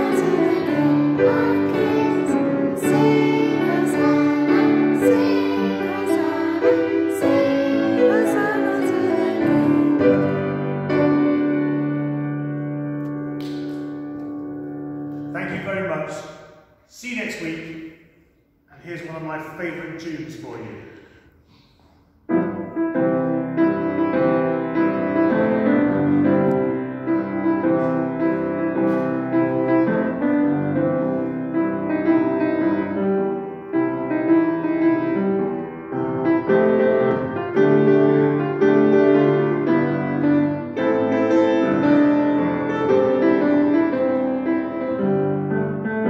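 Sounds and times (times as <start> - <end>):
grand piano playing: 0.0 - 18.0, 22.3 - 46.0.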